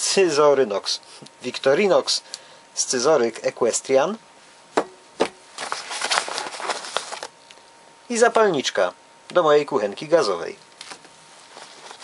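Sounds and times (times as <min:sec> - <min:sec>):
nylon fabric rustling: 0:05.5 - 0:07.3, 0:10.8 - 0:12.0.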